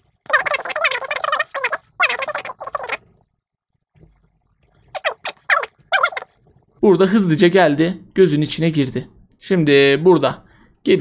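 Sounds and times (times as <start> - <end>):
sped-up chirping man's voice: 6.8 - 11.0.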